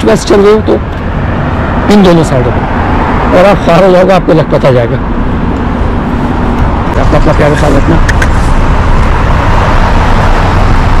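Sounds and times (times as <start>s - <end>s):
road traffic with low rumble: 0.0s - 11.0s.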